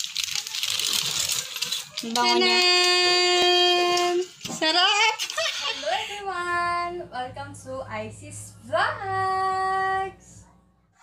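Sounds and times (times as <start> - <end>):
aluminium foil crinkling: 0.0 - 5.8.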